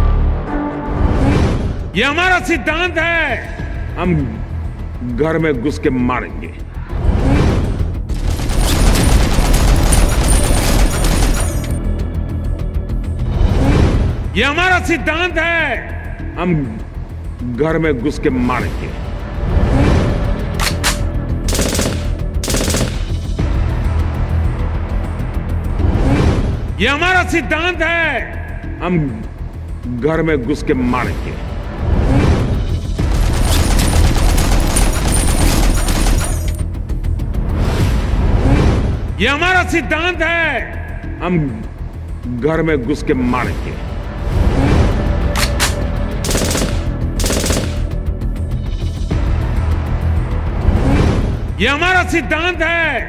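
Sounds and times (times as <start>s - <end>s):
background music with low bass: 0.0s - 53.0s
rapid gunshot bursts: 8.1s - 11.8s, 20.6s - 23.2s, 33.0s - 36.5s, 45.4s - 48.0s.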